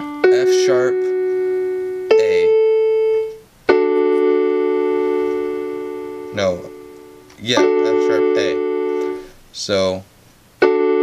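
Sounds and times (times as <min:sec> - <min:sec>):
electronic keyboard piano chord: 0:00.0 - 0:09.9, 0:10.6 - 0:11.0.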